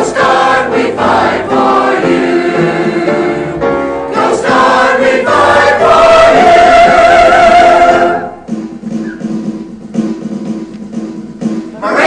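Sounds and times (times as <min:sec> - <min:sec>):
choir singing in harmony: 0:00.0 - 0:08.5, 0:11.8 - 0:12.0.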